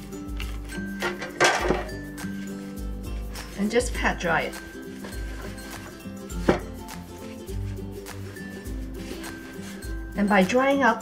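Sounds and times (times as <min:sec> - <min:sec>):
background music with slow beat: 0:00.0 - 0:10.6
hands patting paper towel: 0:02.2 - 0:10.2.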